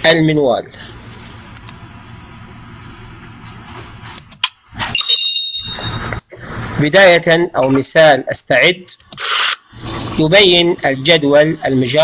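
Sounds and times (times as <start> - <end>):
click: 1.6 - 1.8
high electronic chime: 5.0 - 6.2.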